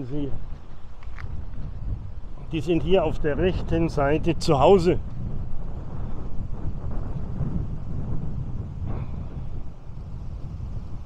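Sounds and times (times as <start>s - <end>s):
low rumble of road travel: 0.0s - 11.0s
wind buffeting microphone: 0.0s - 11.0s.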